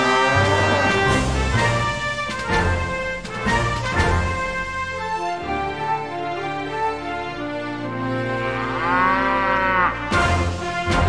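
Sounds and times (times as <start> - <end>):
cow mooing: 0.0 - 1.2, 8.4 - 10.2
wrestling entrance music: 0.0 - 7.2, 9.6 - 11.0.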